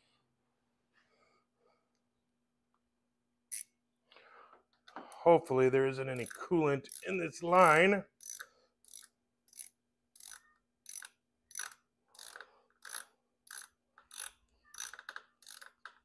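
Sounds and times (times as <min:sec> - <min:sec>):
hand ratchet clicking: 0:06.2 - 0:16.0.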